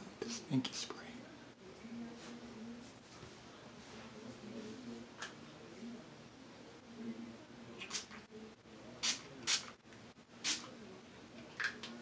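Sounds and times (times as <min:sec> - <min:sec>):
aerosol spray can hissing: 0:10.4 - 0:10.7.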